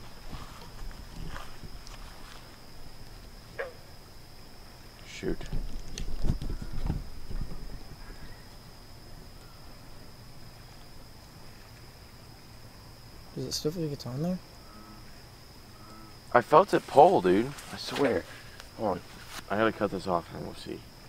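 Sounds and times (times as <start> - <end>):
night insects droning: 0.0 - 21.0
knocks rustles and thumps: 5.4 - 8.1.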